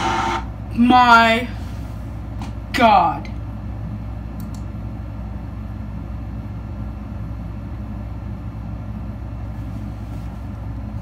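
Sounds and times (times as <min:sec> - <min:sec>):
low hum and rumble: 0:00.0 - 0:11.0.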